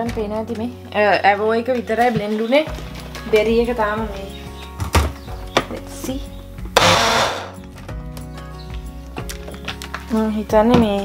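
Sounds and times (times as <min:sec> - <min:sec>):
background music: 0:00.0 - 0:11.0
blender whirring: 0:06.8 - 0:07.6.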